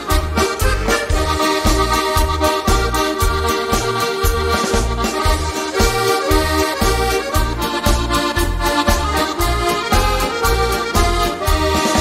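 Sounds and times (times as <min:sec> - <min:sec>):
accordion melody: 0:00.0 - 0:12.0
oom-pah bass: 0:00.0 - 0:12.0.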